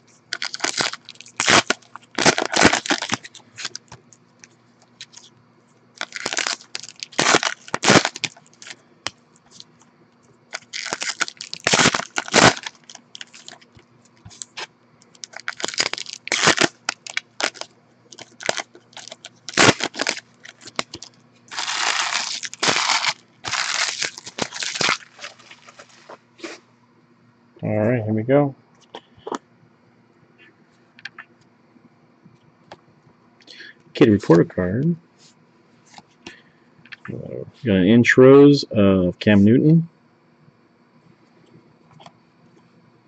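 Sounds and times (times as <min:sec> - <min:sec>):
foil wrappers crinkling: 0:00.3 - 0:05.3, 0:06.0 - 0:09.8, 0:10.5 - 0:26.2.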